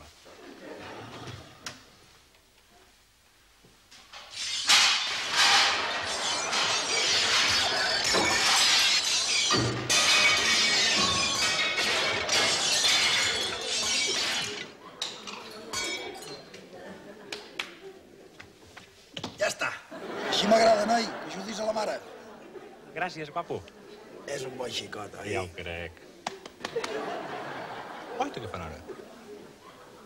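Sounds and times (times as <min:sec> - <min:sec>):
crockery and glass smashing: 0:04.1 - 0:16.5.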